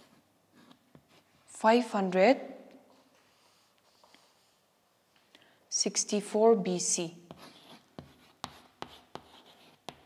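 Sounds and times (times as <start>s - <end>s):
chalk scratching: 7.3s - 10.0s
chalk tapping on chalkboard: 7.3s - 10.0s.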